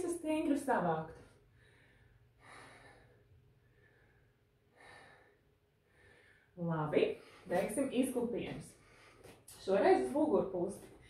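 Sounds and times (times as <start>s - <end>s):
woman breathing softly: 1.4s - 6.6s.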